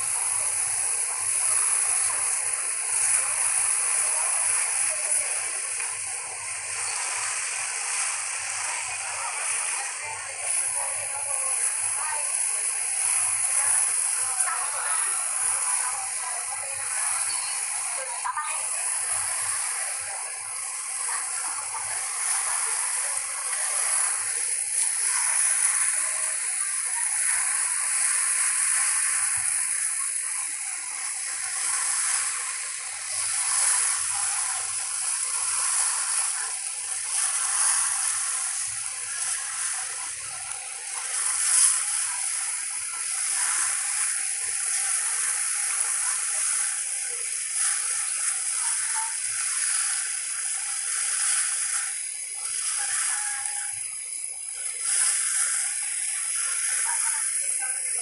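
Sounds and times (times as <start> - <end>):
water rushing along ferry hull: 0.0 - 58.0.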